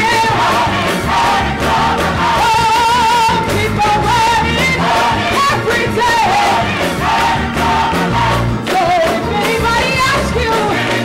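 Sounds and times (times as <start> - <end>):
gospel choir singing: 0.0 - 11.0
woman singing with vibrato: 2.4 - 6.6, 8.7 - 10.8.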